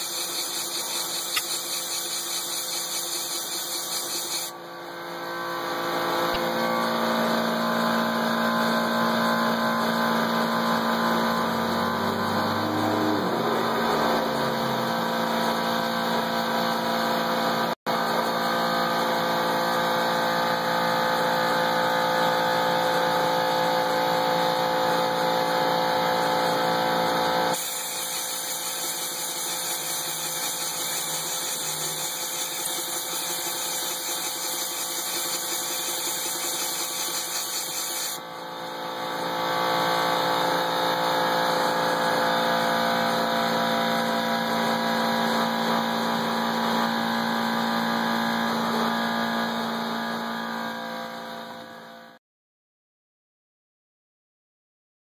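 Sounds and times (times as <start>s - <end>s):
air hiss: 0.0s - 4.5s, 27.6s - 38.2s
motor hum: 0.0s - 52.2s.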